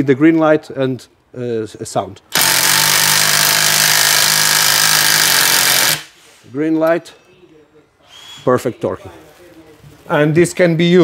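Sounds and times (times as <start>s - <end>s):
impact wrench hammering: 2.3s - 6.1s.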